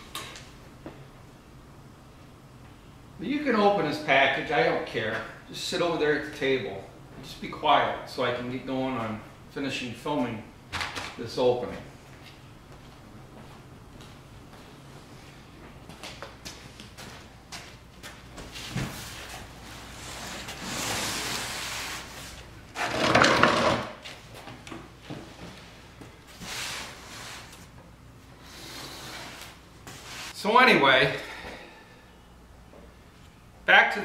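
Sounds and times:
cardboard rustling and scraping: 18.5s - 23.5s.

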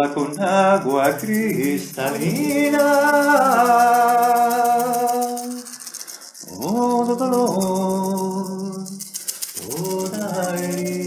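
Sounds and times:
rattle shaking: 0.0s - 11.0s.

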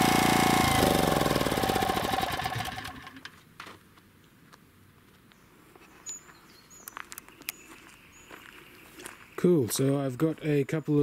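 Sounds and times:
outdoor bush ambience: 0.0s - 11.0s.

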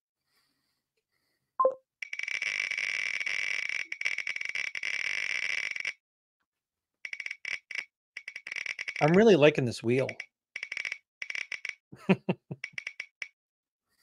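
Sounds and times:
picker wheel ticking: 8.7s - 10.8s.

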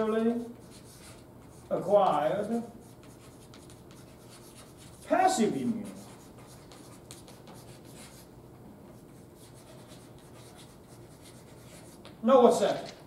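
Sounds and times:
chalk scratching on blackboard: 0.6s - 8.3s, 9.0s - 12.2s.

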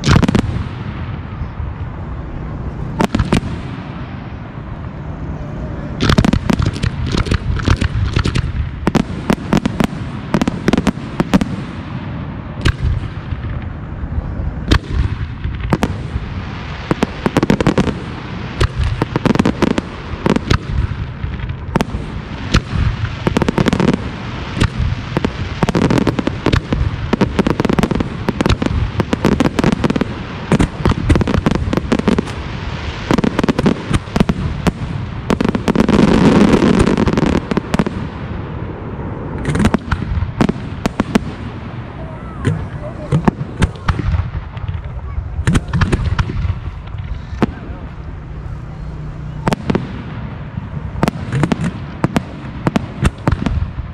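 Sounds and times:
firework shells bursting: 6.0s - 11.8s, 14.7s - 32.4s, 39.4s - 41.5s, 51.0s - 53.8s.

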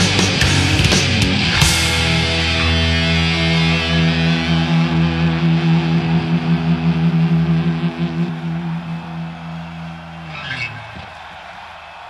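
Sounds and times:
distorted electric guitar chord ringing: 0.0s - 9.7s.

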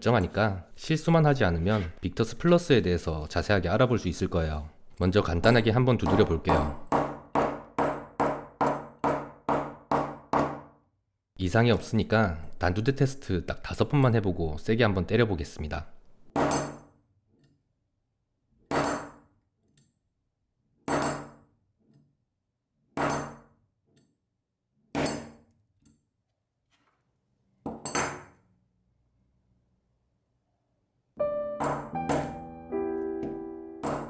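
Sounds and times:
soft piano music: 31.2s - 34.0s.

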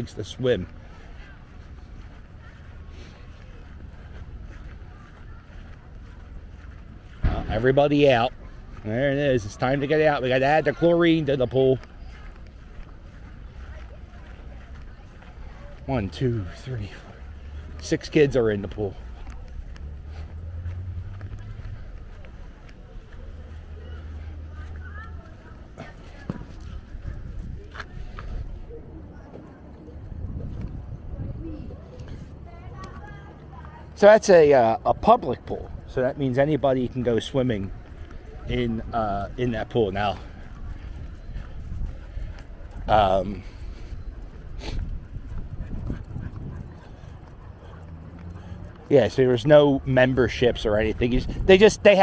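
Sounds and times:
faint distant voices: 0.0s - 52.0s.

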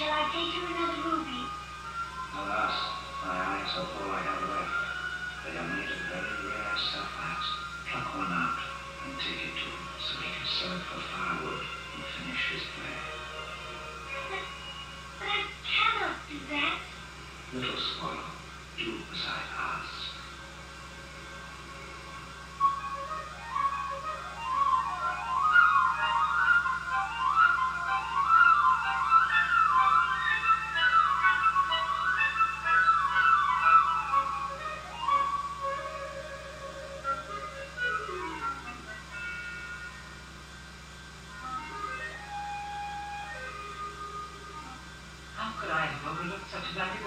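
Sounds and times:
film soundtrack music: 0.0s - 47.0s
steady low hum: 0.0s - 47.0s.

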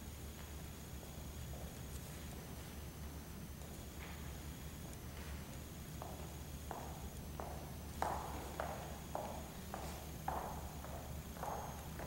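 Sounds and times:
faint steady hum: 0.0s - 12.0s
footsteps on hard floor: 6.0s - 12.0s.

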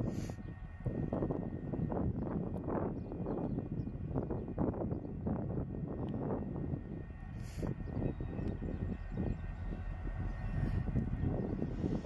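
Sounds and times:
locomotive engine drone: 0.0s - 12.0s.

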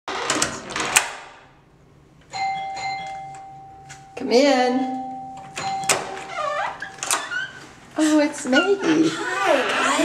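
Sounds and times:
electronic doorbell chime: 2.3s - 6.3s.

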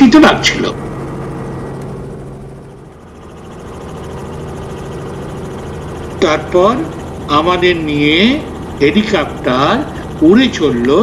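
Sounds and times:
helicopter engine and rotor: 0.0s - 11.0s.

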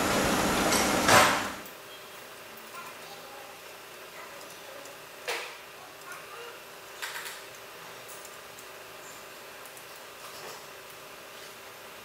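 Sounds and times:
workshop hum: 0.0s - 12.0s.

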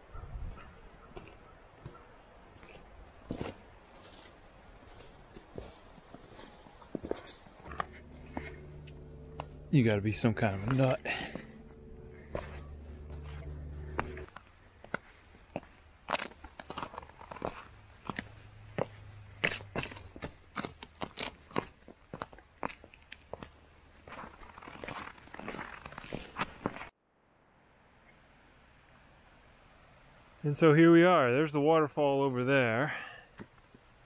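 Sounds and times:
boots crunching over ice and rock: 1.2s - 26.9s
low steady hum: 7.5s - 14.8s.

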